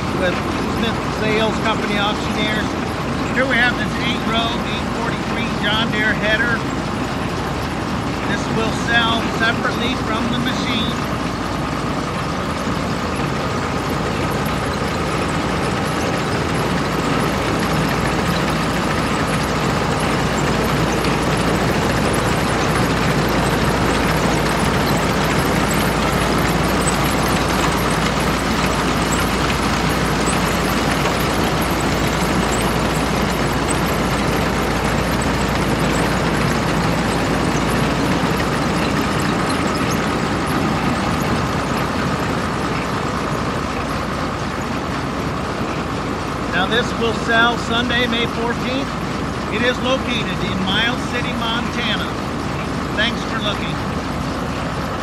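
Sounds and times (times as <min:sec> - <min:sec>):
engine running: 0:00.0 - 0:55.0.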